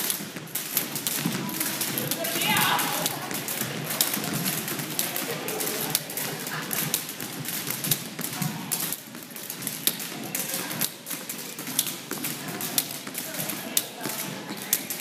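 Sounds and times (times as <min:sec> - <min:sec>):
beaded jump ropes slapping floor: 0:00.0 - 0:15.0.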